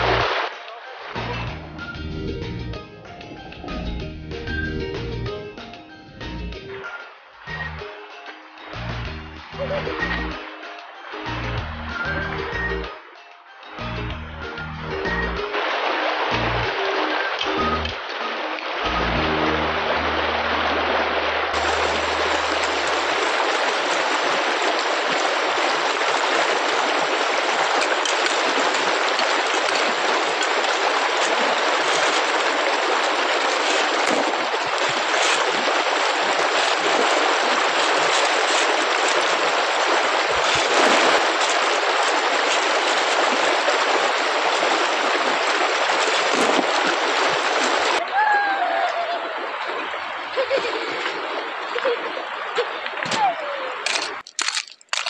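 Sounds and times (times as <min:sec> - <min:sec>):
stream rushing over gravel: 0:00.0 - 0:01.6, 0:14.9 - 0:55.0.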